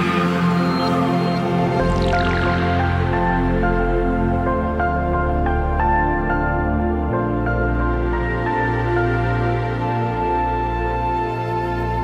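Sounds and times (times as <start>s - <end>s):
sustained held chords: 0.0s - 11.0s.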